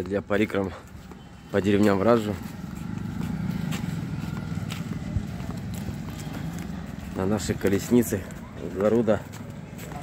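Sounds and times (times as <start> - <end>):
vehicle rumbling over brick paving: 0.0 - 10.0.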